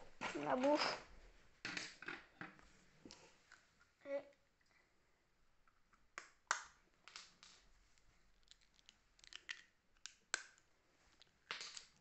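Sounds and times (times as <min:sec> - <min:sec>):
lego bricks clicking: 0:08.4 - 0:12.0.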